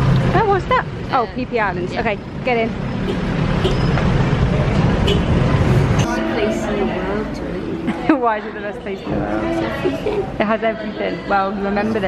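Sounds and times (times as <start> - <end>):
vehicle engines droning: 0.0 - 12.0.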